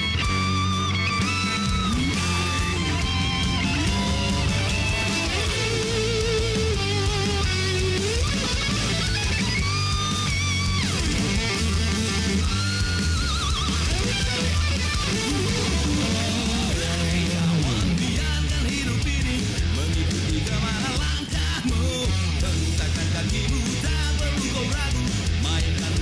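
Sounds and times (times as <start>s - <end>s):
electric lead guitar solo: 0.0s - 18.2s
bass guitar: 0.0s - 26.0s
drums: 0.0s - 26.0s.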